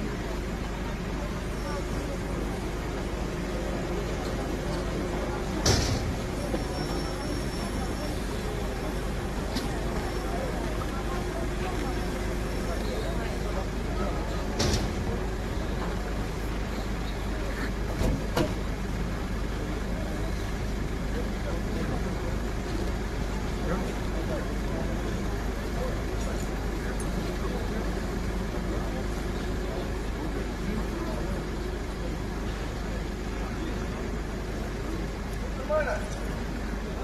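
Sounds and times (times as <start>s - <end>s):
faint indistinct voices: 0.0s - 37.0s.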